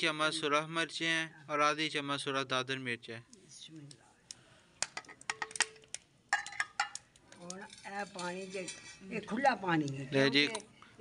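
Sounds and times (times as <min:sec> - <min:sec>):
china plate clinking on clay pot: 0:04.9 - 0:07.0, 0:07.6 - 0:09.2.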